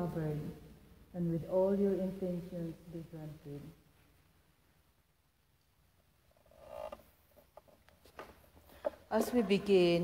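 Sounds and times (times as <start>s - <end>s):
wooden pew creaking: 6.4s - 9.9s.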